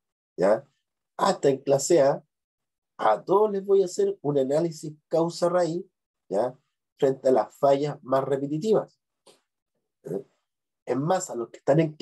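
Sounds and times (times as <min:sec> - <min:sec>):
man speaking: 0:00.4 - 0:00.6, 0:01.2 - 0:02.2, 0:03.0 - 0:08.8, 0:10.9 - 0:12.0.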